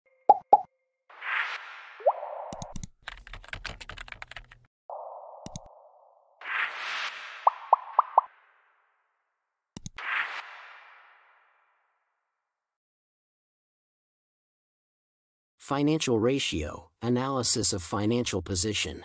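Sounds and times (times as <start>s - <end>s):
mouse click: 2.5s - 2.9s, 5.4s - 5.7s, 9.8s - 10.0s
keyboard typing clicks: 2.5s - 4.6s, 5.4s - 5.7s, 9.8s - 10.0s
interface pops: 4.9s - 6.1s, 7.4s - 8.3s.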